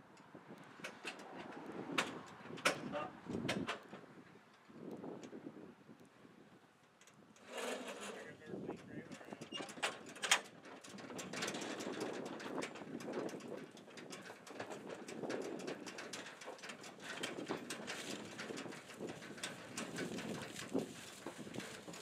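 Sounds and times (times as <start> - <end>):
knocks and clatter in metal trailer: 7.4 - 22.0.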